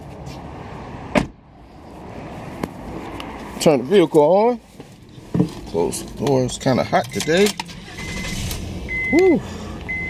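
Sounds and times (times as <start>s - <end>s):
car warning chime beeping: 7.0s - 10.0s.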